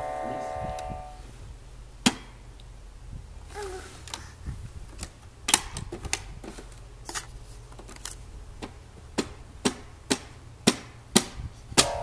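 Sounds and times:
held electronic note: 0.0s - 1.2s.

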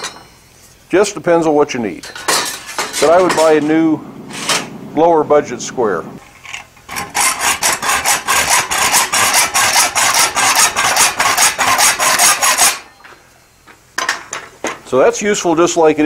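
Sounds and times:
hacksaw cutting metal: 6.9s - 12.9s.

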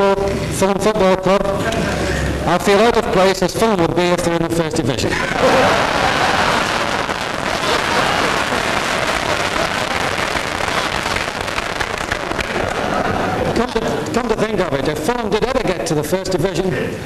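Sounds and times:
people laughing: 5.1s - 14.1s
crowd applauding: 5.2s - 13.8s.

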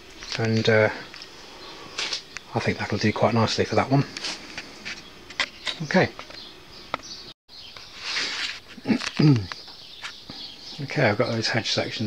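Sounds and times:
man clearing throat: 8.8s - 9.6s.

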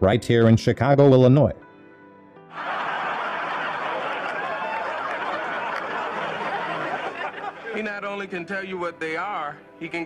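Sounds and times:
faint background music: 0.0s - 10.0s
studio audience laughing: 2.5s - 8.4s.

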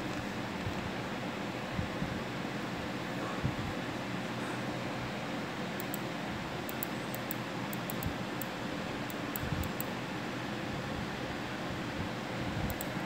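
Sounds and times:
steady room noise hiss: 0.0s - 13.0s.

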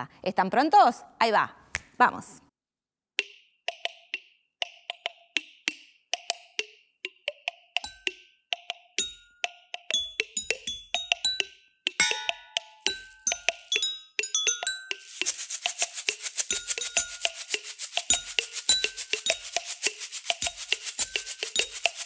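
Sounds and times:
drinking glasses struck ringing: 12.0s - 14.9s.

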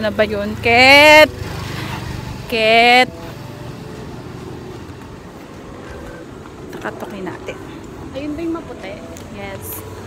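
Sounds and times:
street noise: 0.0s - 10.0s
vehicle engine humming: 0.0s - 10.0s.

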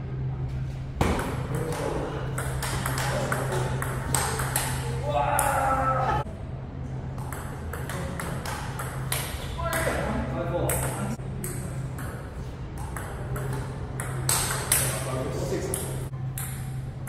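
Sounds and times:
steady low hum: 0.0s - 17.0s
table tennis ball clicking: 2.4s - 4.8s, 12.8s - 15.0s.

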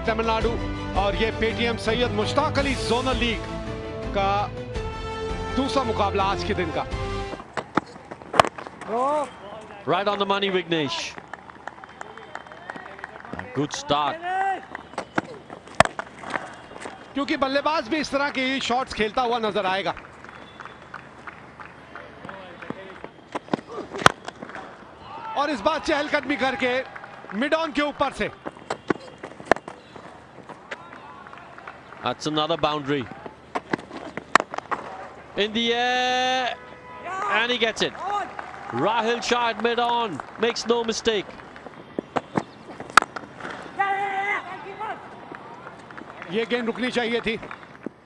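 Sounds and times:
cricket bat striking ball: 7.3s - 9.0s, 14.8s - 17.0s, 22.7s - 24.8s, 28.4s - 30.1s, 33.5s - 35.0s, 41.4s - 43.7s
man shouting: 37.0s - 39.2s, 43.8s - 45.0s.

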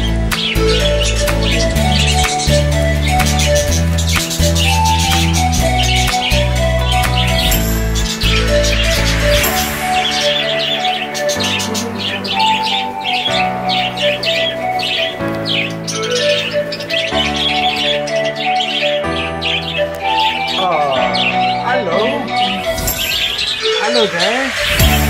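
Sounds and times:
background music of sustained chords: 0.0s - 25.0s
budgerigars chirping: 0.0s - 25.0s.

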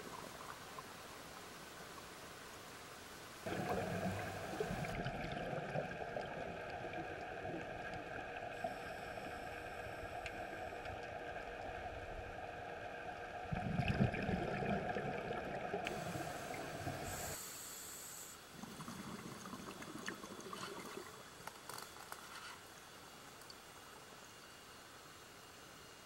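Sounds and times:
underwater noise: 0.0s - 23.7s
regulator bubbles gurgling: 3.4s - 17.4s, 18.5s - 21.4s
steady humming drone: 7.5s - 13.1s.

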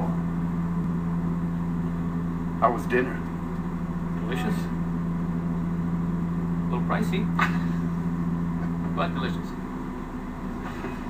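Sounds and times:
propeller engines droning: 0.0s - 11.0s.

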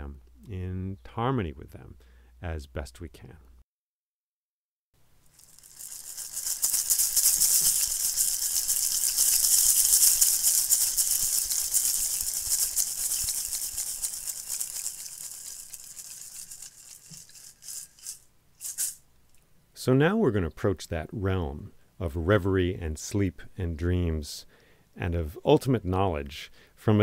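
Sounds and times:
percussion shaker rattling: 5.2s - 19.1s.

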